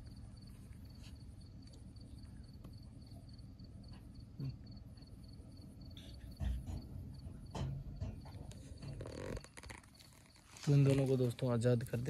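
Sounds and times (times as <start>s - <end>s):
cricket chirping: 0.0s - 12.0s.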